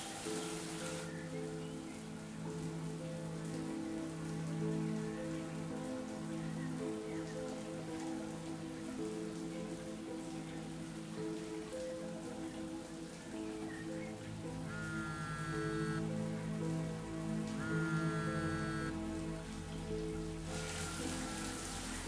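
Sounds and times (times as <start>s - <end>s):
shower water spraying: 0.0s - 1.2s, 2.0s - 22.0s
music with long held chords: 0.0s - 22.0s.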